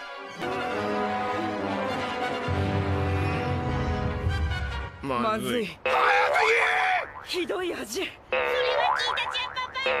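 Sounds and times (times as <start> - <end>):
wobbling cartoon boing: 7.0 - 7.4, 8.4 - 10.0.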